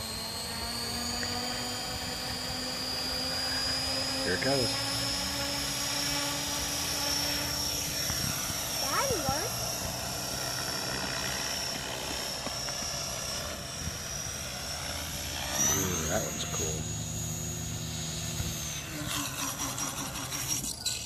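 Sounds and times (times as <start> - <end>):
rc helicopter motor whine: 0.0 - 21.0
rotor blades whirring: 0.0 - 21.0.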